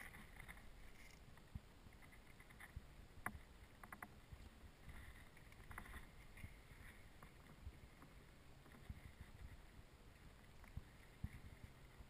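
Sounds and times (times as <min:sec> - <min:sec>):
faint low outdoor rumble: 0:00.0 - 0:12.0.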